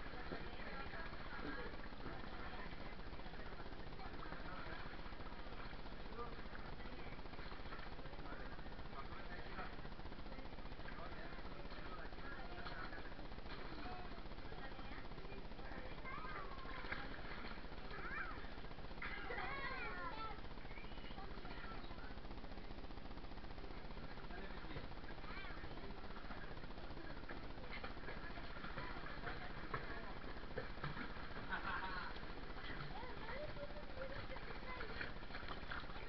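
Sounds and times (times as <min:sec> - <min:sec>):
faint children's voices: 0:00.0 - 0:36.0
pool water splashing: 0:00.0 - 0:36.0
steady background hiss: 0:00.0 - 0:36.0.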